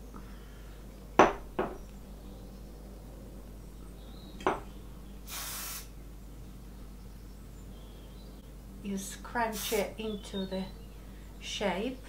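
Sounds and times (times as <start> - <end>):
aerosol hairspray hiss: 5.3 - 5.9, 9.5 - 9.9.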